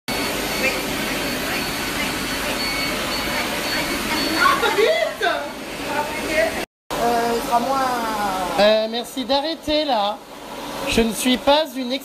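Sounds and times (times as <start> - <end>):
machine blowing noise: 0.1 - 4.8.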